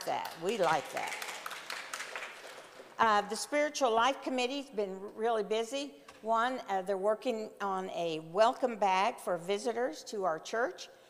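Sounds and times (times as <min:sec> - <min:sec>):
light scattered applause: 0:00.0 - 0:02.9.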